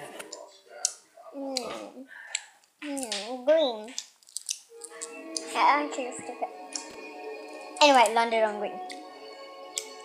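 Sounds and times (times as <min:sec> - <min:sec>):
girl humming sing-song: 0:04.8 - 0:07.0.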